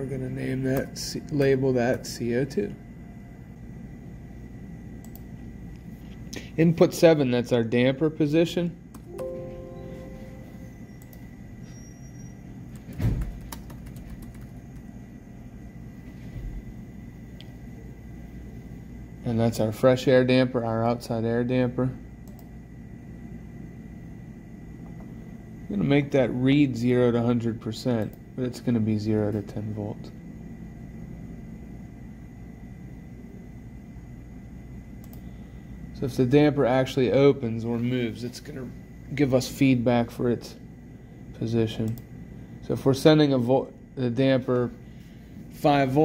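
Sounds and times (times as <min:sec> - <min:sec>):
low room rumble: 0:00.0 - 0:46.0
low hum: 0:08.9 - 0:12.9
thin high whine: 0:09.1 - 0:12.6
computer keyboard clicks: 0:12.7 - 0:14.9.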